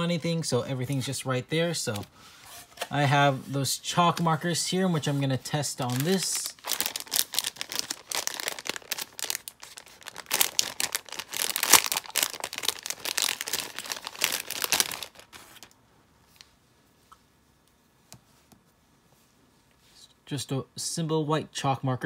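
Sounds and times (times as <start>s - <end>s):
plastic bag crinkling: 5.0s - 15.8s.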